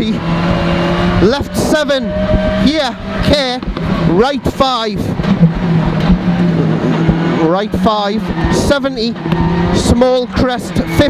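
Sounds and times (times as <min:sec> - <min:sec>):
road and wind noise: 0:00.0 - 0:11.0
turbocharged car engine running hard: 0:00.0 - 0:11.0.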